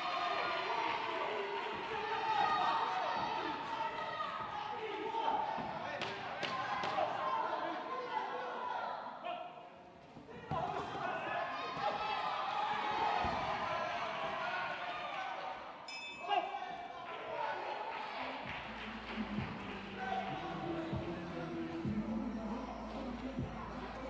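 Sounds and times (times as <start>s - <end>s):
voices shouting: 0.0s - 9.5s
boxing bell ringing: 15.9s - 16.5s.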